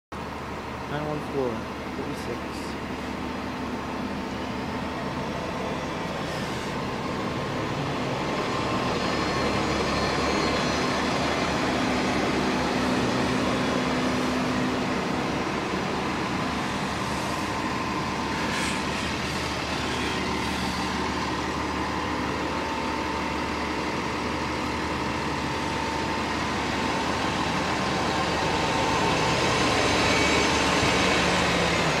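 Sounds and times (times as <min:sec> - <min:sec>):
buses passing: 0:00.1 - 0:32.0
bus engine droning: 0:00.2 - 0:32.0.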